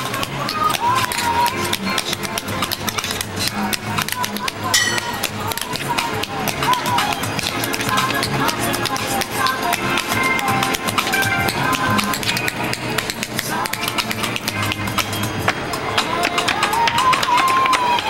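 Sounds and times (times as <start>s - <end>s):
music with steady low beat: 0.0s - 16.6s
tap-dance shoes tapping on board: 0.1s - 18.0s.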